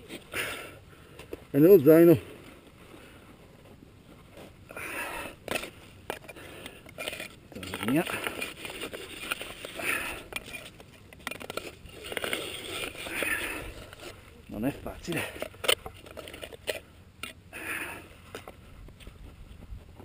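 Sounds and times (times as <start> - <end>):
person breathing hard: 4.7 - 5.5, 6.2 - 7.0, 9.6 - 10.5, 13.0 - 14.2, 17.5 - 18.7.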